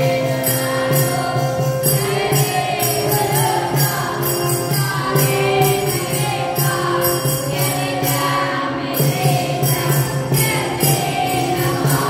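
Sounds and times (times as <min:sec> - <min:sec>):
group chanting: 0:00.0 - 0:12.0
jingling percussion: 0:00.0 - 0:12.0.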